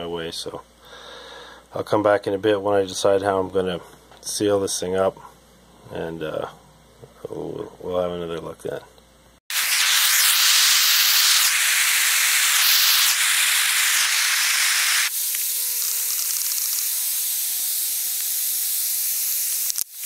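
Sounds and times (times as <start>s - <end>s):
propane torch hissing: 9.5s - 20.0s.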